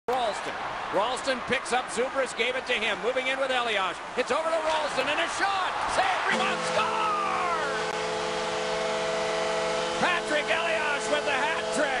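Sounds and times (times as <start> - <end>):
commentator talking: 0.1 - 7.7, 10.0 - 12.0
crowd noise: 0.1 - 12.0
goal horn chord: 6.2 - 12.0.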